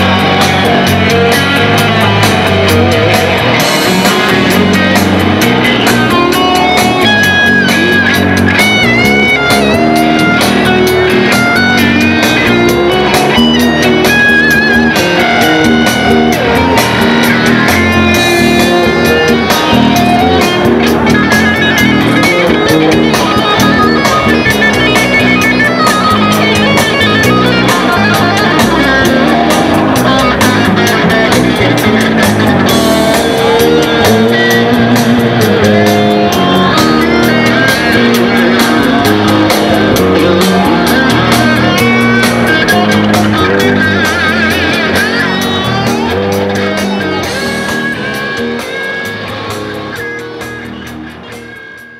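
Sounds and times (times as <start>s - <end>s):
electric guitar lead lines: 0.0s - 51.9s.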